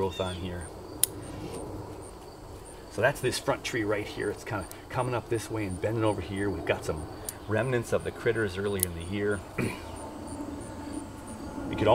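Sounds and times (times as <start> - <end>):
cricket chirping: 0.0 - 11.9
pruning shears snipping: 8.7 - 9.1.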